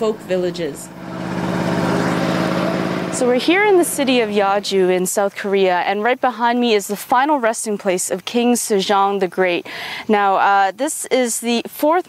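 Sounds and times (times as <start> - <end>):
steady engine drone: 0.0 - 5.2.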